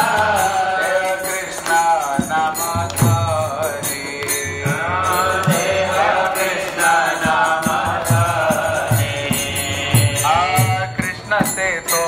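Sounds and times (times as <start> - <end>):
devotional singing: 0.0 - 12.0
small hand cymbals striking: 0.0 - 12.0
hand drum beating: 2.2 - 5.8.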